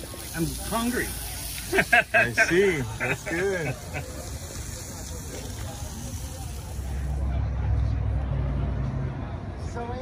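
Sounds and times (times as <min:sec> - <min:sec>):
vehicle engine rumbling: 0:03.0 - 0:10.0.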